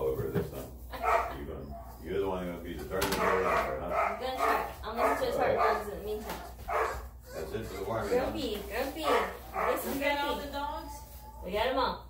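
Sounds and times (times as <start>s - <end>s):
puppy crying and yelping: 6.5s - 10.4s.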